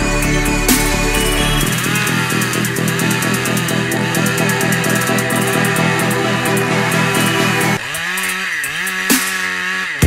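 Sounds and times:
background music with a beat: 0.0s - 9.6s
chainsaw running at full throttle: 0.0s - 10.0s.

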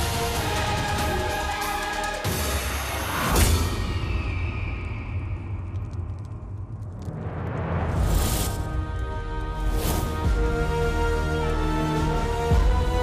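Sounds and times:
dramatic background score: 0.0s - 13.0s
low rumble: 3.4s - 10.9s.

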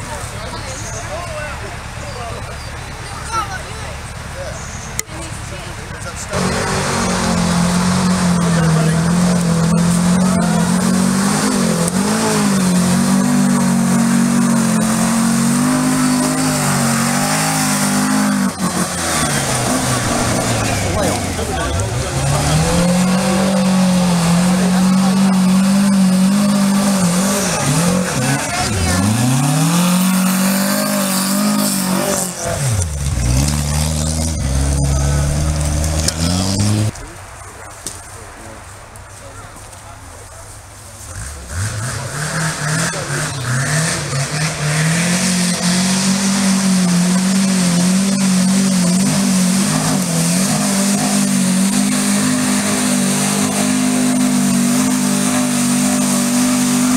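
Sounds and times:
car engine revving hard: 6.3s - 37.0s, 41.1s - 56.9s.

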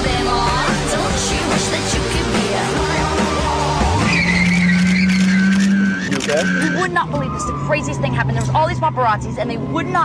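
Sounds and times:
car engine running: 0.0s - 10.0s
tyres squealing: 3.8s - 8.8s.

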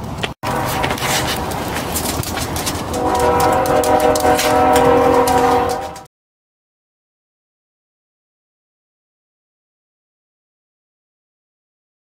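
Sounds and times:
horn sounding a chord: 0.4s - 1.9s, 2.9s - 6.1s
rustling handling noise: 0.5s - 5.9s.

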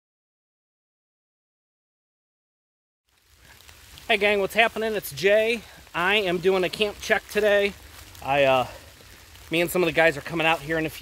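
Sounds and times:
low outdoor rumble: 3.1s - 11.0s.

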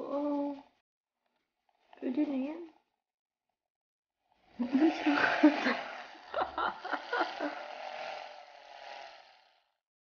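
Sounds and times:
milk frother whirring: 4.2s - 9.9s.

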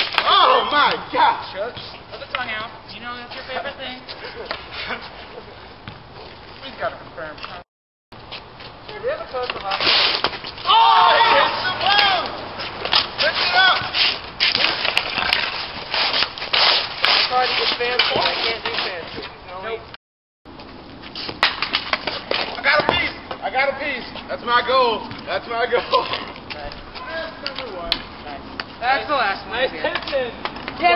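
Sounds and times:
hockey sticks clacking on pavement: 0.0s - 5.4s, 6.0s - 7.6s, 8.2s - 19.8s, 20.6s - 30.9s
players shouting: 0.1s - 1.6s, 10.6s - 14.0s.

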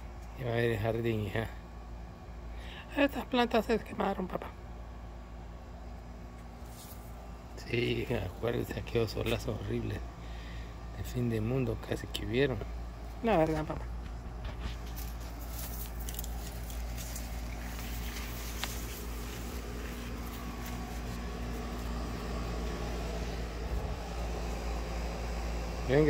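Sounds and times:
low background hum: 0.0s - 26.0s.

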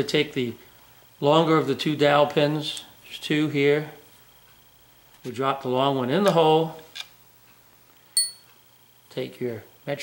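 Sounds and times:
high bell-like ring: 8.2s - 8.5s.

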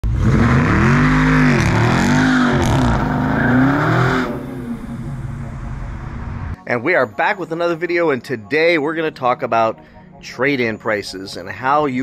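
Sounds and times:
car engine revving hard: 0.0s - 6.5s.

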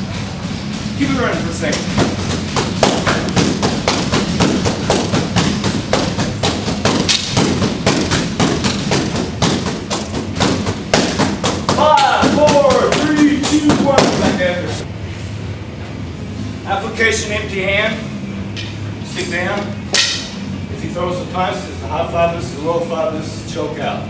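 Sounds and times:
sticks striking punching bag: 1.6s - 14.5s, 19.9s - 20.4s.

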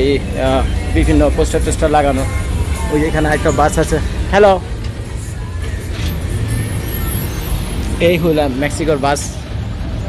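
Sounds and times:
bus engines rumbling: 0.0s - 10.0s.

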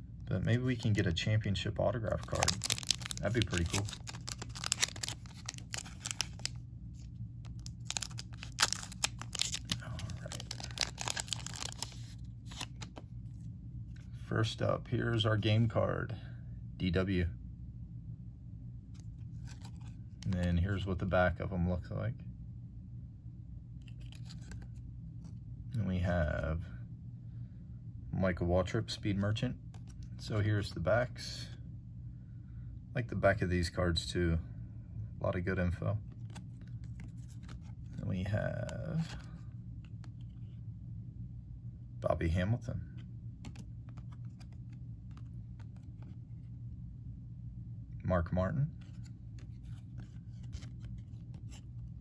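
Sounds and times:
cards being shuffled: 2.0s - 13.1s, 18.9s - 20.6s, 23.8s - 25.4s, 29.1s - 30.5s, 36.0s - 40.5s, 42.9s - 46.5s, 48.7s - 52.0s
trading cards clicking: 2.2s - 6.5s, 7.5s - 12.9s, 43.4s - 46.1s.

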